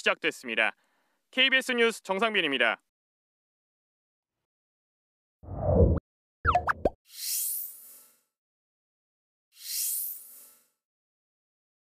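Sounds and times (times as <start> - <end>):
bubbly upward-gliding pops: 6.5 - 7.0.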